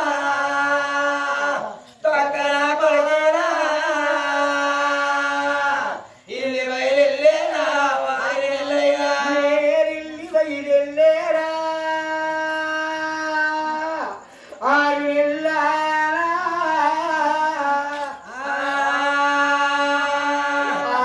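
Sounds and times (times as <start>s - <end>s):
man singing unaccompanied chant: 0.0s - 21.0s.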